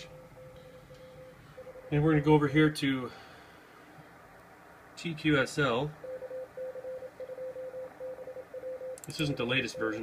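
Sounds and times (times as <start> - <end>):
morse code tone: 0.0 - 2.4, 6.0 - 10.0.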